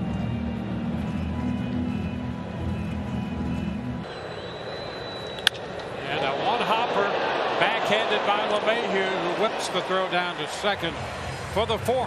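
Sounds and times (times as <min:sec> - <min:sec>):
crowd ambience: 0:00.0 - 0:12.0
low-pitched stadium music: 0:00.0 - 0:12.0.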